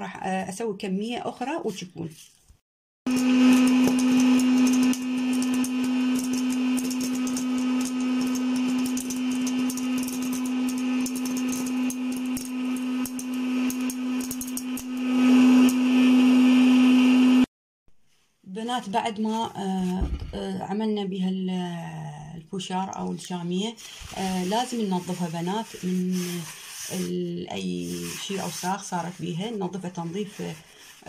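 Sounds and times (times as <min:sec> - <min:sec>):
popcorn kernels popping: 0:03.1 - 0:15.8
popcorn maker fan humming: 0:03.1 - 0:17.5.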